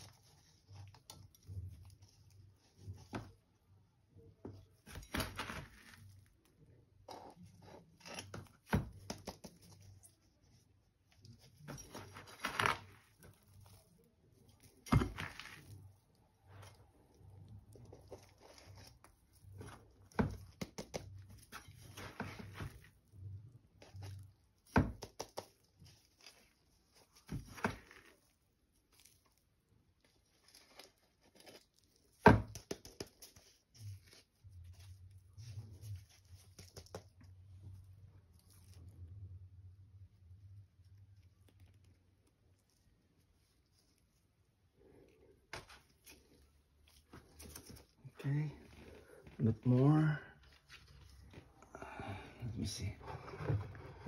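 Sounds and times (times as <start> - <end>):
soil crumbling into plastic pot: 11.6 - 22.9.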